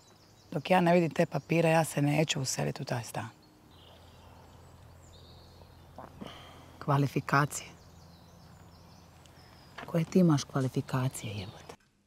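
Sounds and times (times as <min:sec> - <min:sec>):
outdoor background hiss: 0:00.0 - 0:12.0
woman speaking: 0:00.5 - 0:03.4, 0:06.8 - 0:07.8, 0:09.8 - 0:11.8
high bird chirps: 0:03.4 - 0:11.7.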